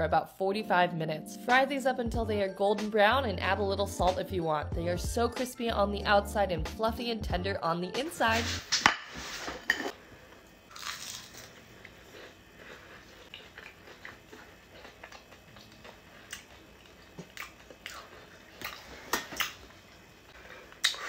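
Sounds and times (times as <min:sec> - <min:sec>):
crunchy chewing: 0:10.7 - 0:21.0.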